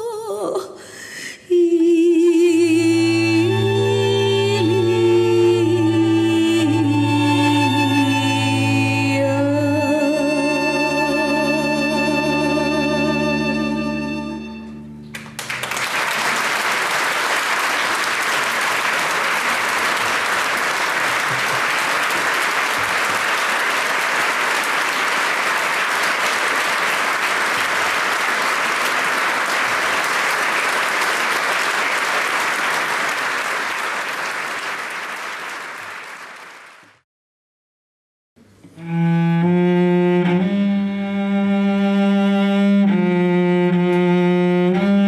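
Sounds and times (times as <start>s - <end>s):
audience applauding: 15.1s - 37.0s.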